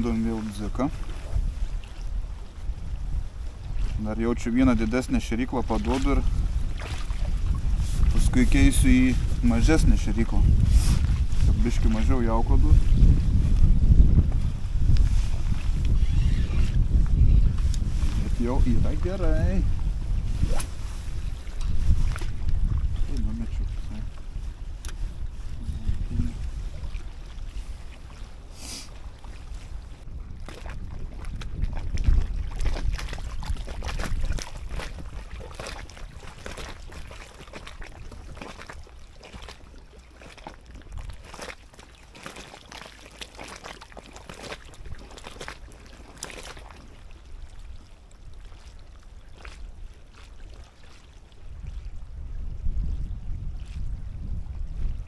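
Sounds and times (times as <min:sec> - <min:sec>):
small waves lapping: 0:00.0 - 0:13.8, 0:14.5 - 0:55.0
wind rumbling on microphone: 0:00.0 - 0:55.0.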